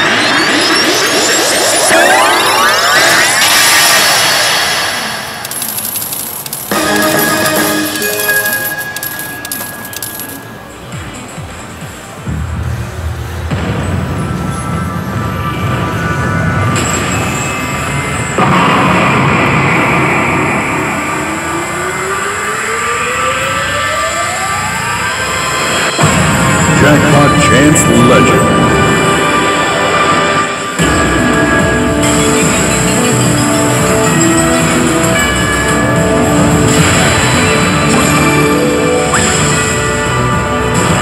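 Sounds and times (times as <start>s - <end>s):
arcade machine whooshing effect: 0.0s - 10.5s
arcade game music and effects: 0.0s - 41.0s
sharp clicks: 5.4s - 10.4s
loud hit: 13.4s - 21.6s, 25.9s - 29.4s.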